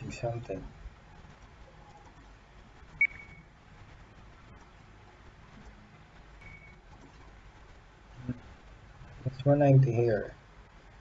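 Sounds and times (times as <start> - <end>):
faint room noise: 0.0 - 11.0
short high-pitched beep: 3.0 - 3.5, 6.4 - 6.8.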